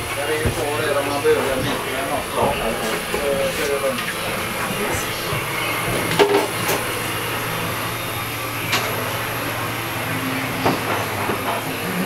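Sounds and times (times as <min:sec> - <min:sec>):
low machinery hum: 0:00.0 - 0:12.0
knocks and clatters: 0:10.6 - 0:11.8.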